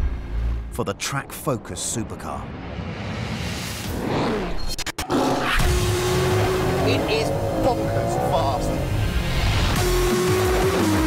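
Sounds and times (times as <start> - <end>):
sports car engine at steady revs: 5.7 - 9.2.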